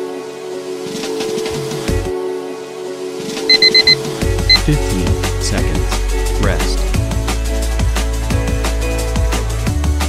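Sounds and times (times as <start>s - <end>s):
high electronic beeps: 3.5s - 4.7s
electronic workout music: 3.5s - 6.0s.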